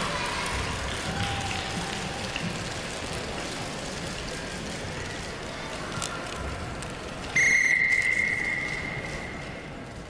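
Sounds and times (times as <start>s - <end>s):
arena hubbub: 0.0s - 10.0s
high steady whistle: 7.4s - 9.6s.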